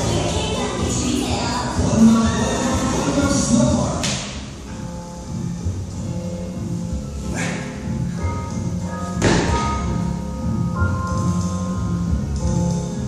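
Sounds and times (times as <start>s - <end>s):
background music: 0.0s - 13.0s
thuds on gym floor: 9.2s - 9.8s.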